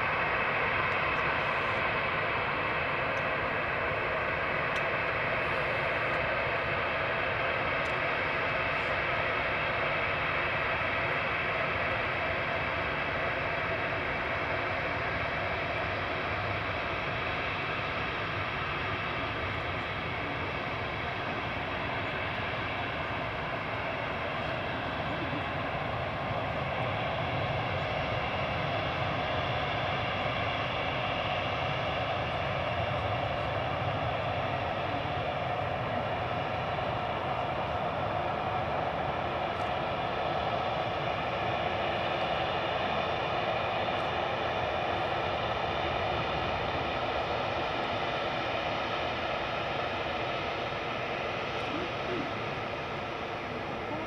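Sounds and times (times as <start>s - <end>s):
jet engines taxiing: 0.0s - 54.0s.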